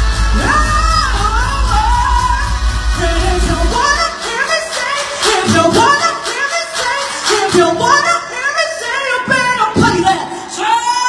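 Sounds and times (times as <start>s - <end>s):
backing track with beat: 0.0s - 11.0s
person singing pop song: 0.0s - 11.0s.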